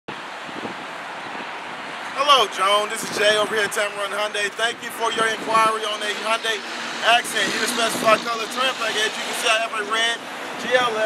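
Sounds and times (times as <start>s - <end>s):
wind on microphone: 0.1s - 2.2s, 4.7s - 9.5s.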